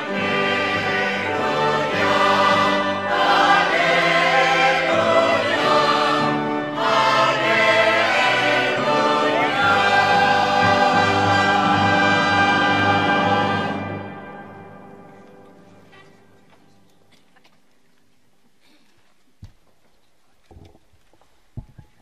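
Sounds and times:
choir singing with instruments: 0.0 - 15.6.

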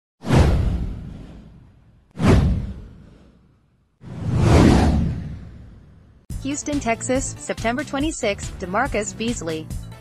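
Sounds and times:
deep boom: 0.2 - 3.2, 4.0 - 6.2
whoosh: 0.2 - 6.3.

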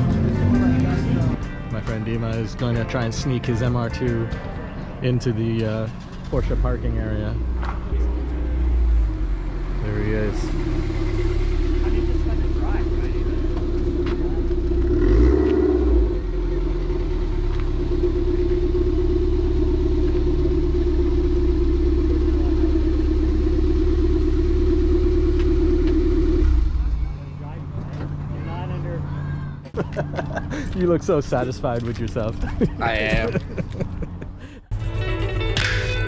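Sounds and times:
car engine running at low revs: 5.6 - 29.0.

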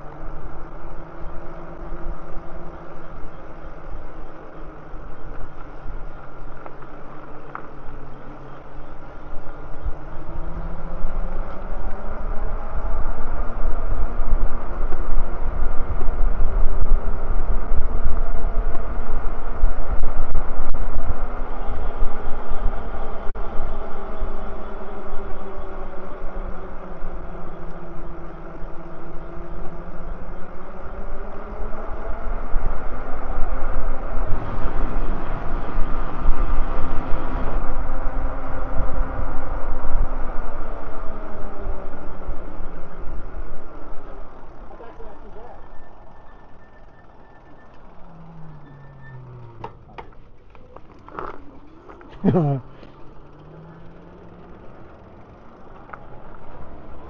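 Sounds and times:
wind rumble on microphone: 0.0 - 44.7
electric bike motor whine: 0.0 - 57.0.

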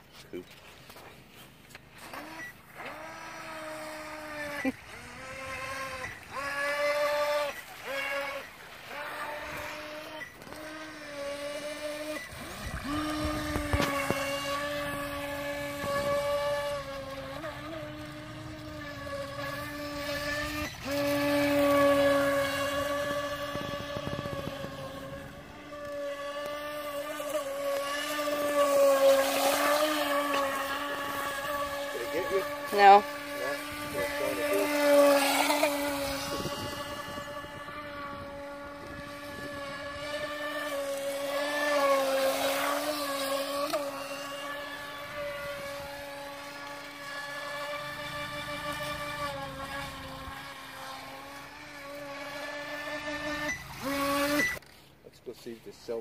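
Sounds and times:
rc boat motor whining: 0.0 - 56.0.

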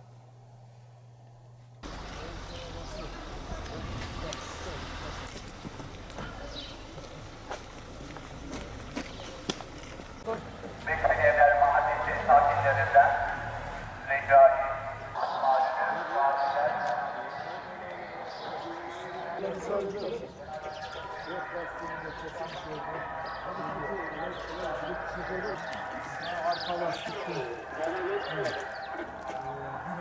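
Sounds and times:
people talking indistinctly: 10.2 - 30.0.

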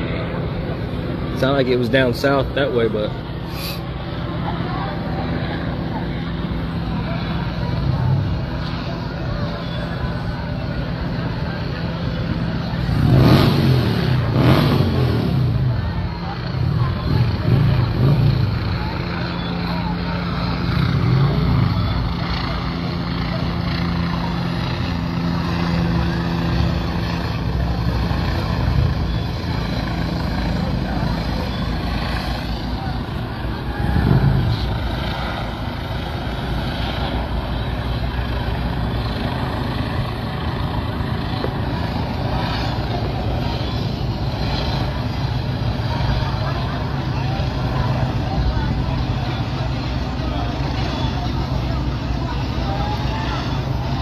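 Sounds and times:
engine hum: 0.0 - 54.0.

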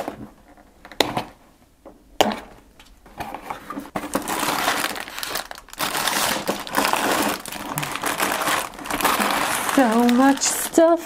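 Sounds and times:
plastic bags crinkling: 3.9 - 11.0.

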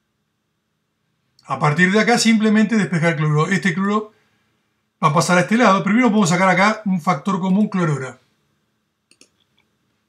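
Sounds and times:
computer mouse clicks: 9.1 - 9.8.

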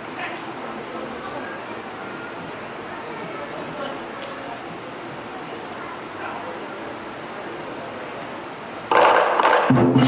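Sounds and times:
drum gong and cymbals band: 8.9 - 10.0.

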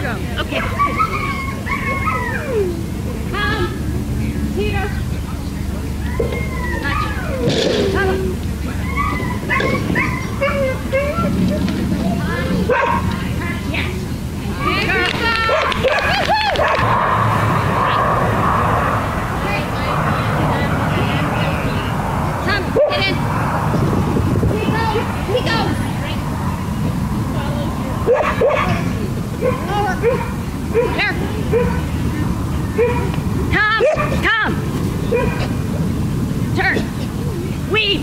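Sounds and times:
people talking: 0.0 - 38.0
dog barking: 12.7 - 13.1, 15.5 - 16.9, 22.8 - 23.0, 28.1 - 28.8, 29.4 - 31.8, 32.8 - 33.1, 33.8 - 34.2, 35.1 - 35.5.

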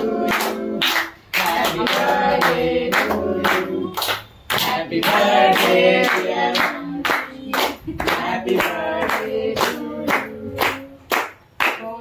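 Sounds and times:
group clapping in time: 0.0 - 12.0.

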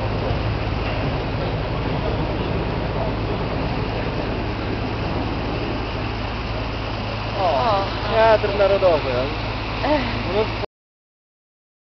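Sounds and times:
ferry engine drone: 0.0 - 10.7
rushing water and air: 0.0 - 10.7.

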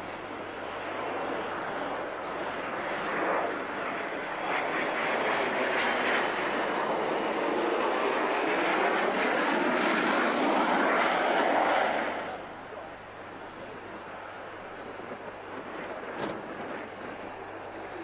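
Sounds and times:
jet engine rushing with high whine: 0.0 - 18.0.

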